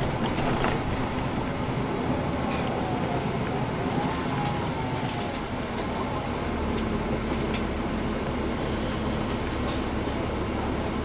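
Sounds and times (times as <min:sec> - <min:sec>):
bus diesel engine running: 0:00.0 - 0:11.0
air brake hiss: 0:08.6 - 0:09.3.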